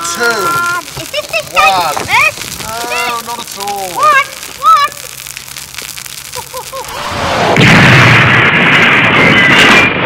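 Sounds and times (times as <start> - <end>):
fuse crackling and fizzing: 0.0 - 8.4.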